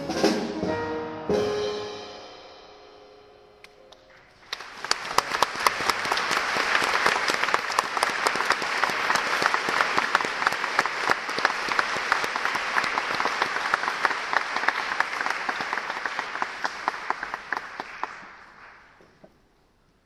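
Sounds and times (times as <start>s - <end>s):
audience applauding: 3.9s - 19.2s.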